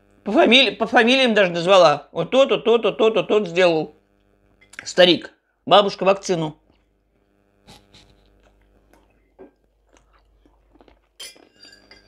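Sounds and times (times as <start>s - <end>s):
quiet chewing: 7.6s - 12.0s
cutlery clinking on a plate: 11.2s - 12.0s.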